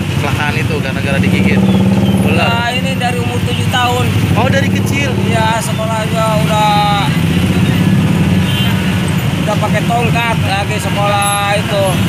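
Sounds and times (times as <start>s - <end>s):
motorcycles and bus passing: 0.0s - 12.0s.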